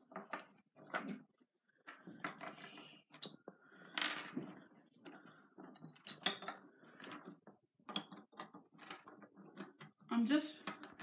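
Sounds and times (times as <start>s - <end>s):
wooden toy pieces clicking: 0.1s - 11.0s.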